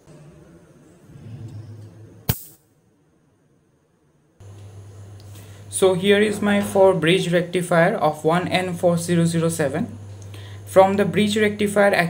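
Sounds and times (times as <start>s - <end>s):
low electrical hum: 0.0s - 12.0s
capacitor spark snap: 2.3s - 2.6s.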